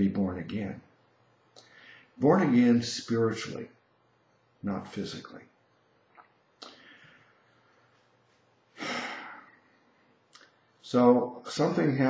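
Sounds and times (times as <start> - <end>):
man speaking: 0.0 - 0.9, 2.2 - 3.8, 4.6 - 5.6, 10.8 - 12.0
man sighing breath: 8.8 - 9.6
mouth click: 10.3 - 10.6.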